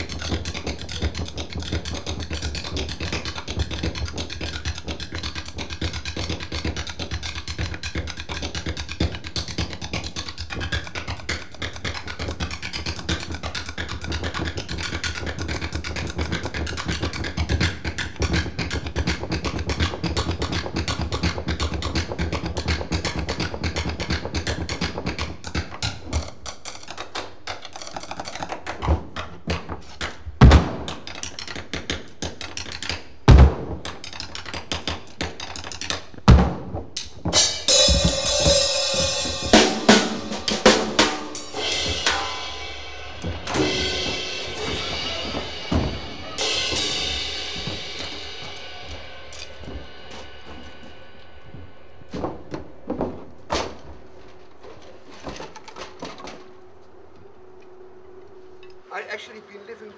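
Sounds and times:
drumsticks tapping wooden clogs: 0:00.0 - 0:42.4, 0:43.2 - 0:56.5
loud knock: 0:43.2 - 0:53.8.

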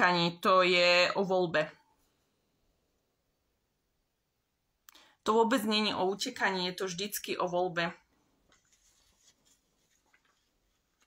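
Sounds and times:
faint soft rustles: 0:08.1 - 0:11.0.

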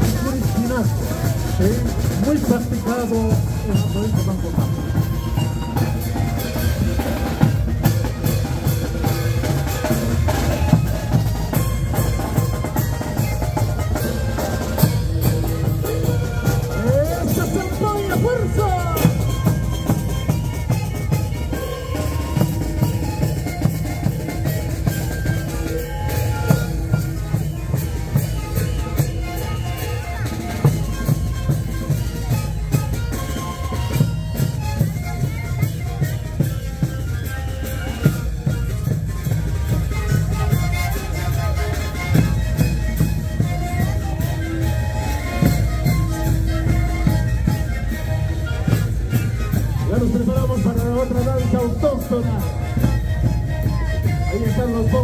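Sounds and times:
panpipes played in unison: 0:00.0 - 0:55.0.

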